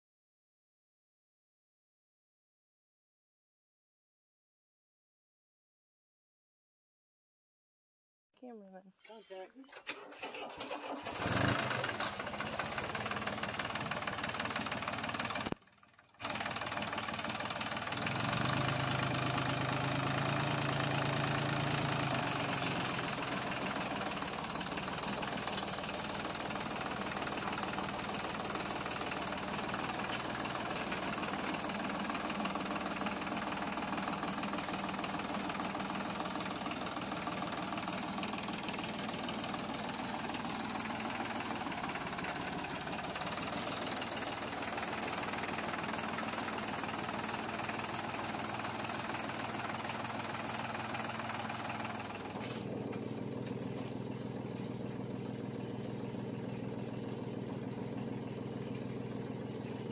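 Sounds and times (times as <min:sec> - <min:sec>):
diesel tractor engine clattering: 0:09.1 - 0:59.9.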